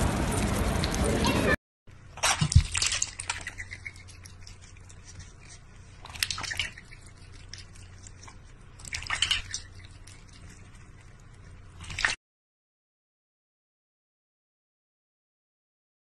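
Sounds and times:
water splashing in metal bowl: 2.2 - 4.6, 6.0 - 7.7, 8.8 - 10.1, 11.8 - 12.2
cat drinking: 2.2 - 12.2
duck dabbling bill in water: 2.2 - 12.2.

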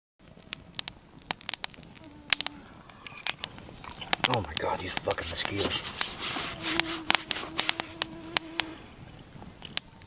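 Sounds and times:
sharp clicks: 0.5 - 5.6
mosquito whining: 2.0 - 3.3, 6.2 - 9.0.

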